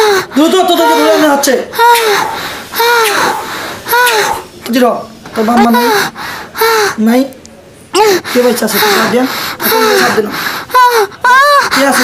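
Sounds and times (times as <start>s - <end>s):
voices in a small room: 0.0s - 12.0s
breaths: 2.0s - 4.5s, 5.9s - 7.0s, 8.0s - 12.0s.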